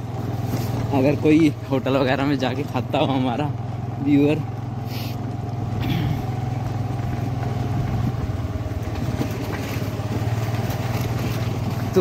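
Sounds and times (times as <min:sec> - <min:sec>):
road and wind noise: 0:00.0 - 0:12.0
scooter engine running: 0:00.0 - 0:12.0.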